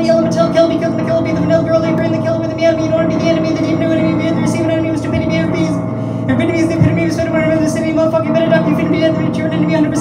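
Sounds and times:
man rapping fast: 0.0s - 10.0s
sustained piano chords: 0.0s - 10.0s.

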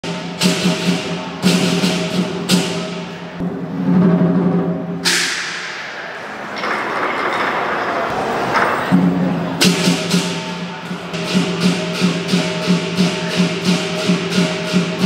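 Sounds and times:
cymbal crashes: 0.0s - 6.4s, 8.9s - 15.0s
big drum beating: 0.0s - 7.4s, 8.8s - 15.0s.

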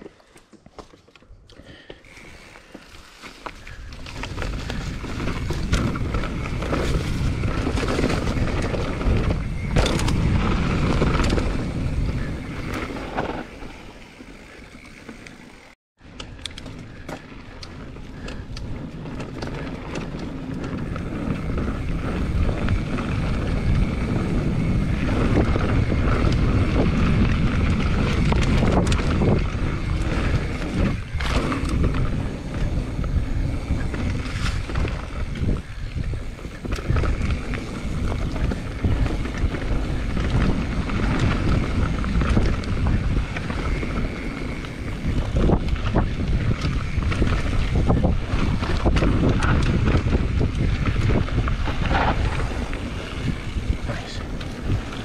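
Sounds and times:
mountain bike rumbling and rattling: 0.0s - 55.0s
wind buffeting microphone: 3.6s - 15.0s, 16.4s - 55.0s
bike knocking over bumps: 4.5s - 11.7s.

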